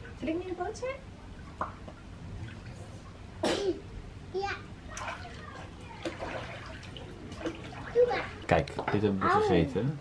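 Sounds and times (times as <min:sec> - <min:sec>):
water splashing in paddling pool: 0:04.8 - 0:08.6
child's high-pitched vocal sounds: 0:07.9 - 0:08.4.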